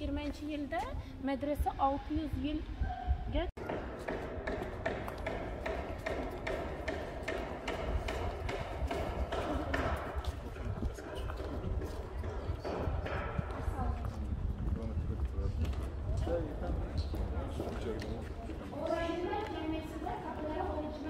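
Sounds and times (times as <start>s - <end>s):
footsteps on stone paving: 0.0s - 1.0s, 9.4s - 21.0s.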